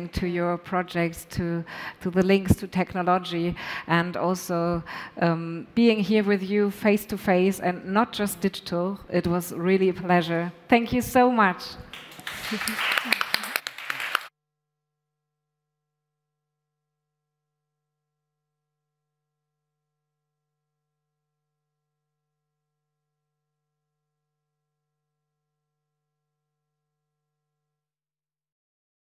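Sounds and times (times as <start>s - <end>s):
applause: 11.9s - 14.3s.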